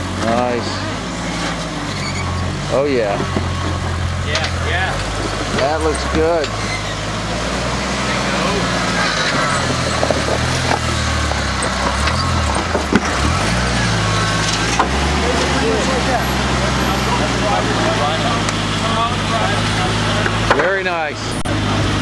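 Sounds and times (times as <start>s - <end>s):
engine running under load: 0.0s - 22.0s.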